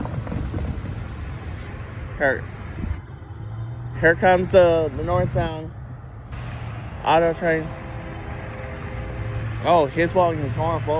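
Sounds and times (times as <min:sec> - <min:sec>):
wind noise on microphone: 0:00.0 - 0:01.6, 0:02.6 - 0:03.1
low vehicle rumble: 0:00.0 - 0:10.9.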